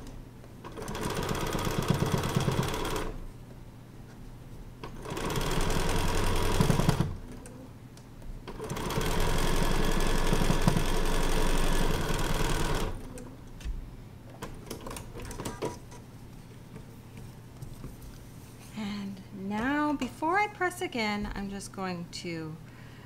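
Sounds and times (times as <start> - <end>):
electric sewing machine stitching: 0.6 - 3.2, 4.8 - 7.4, 8.5 - 13.2.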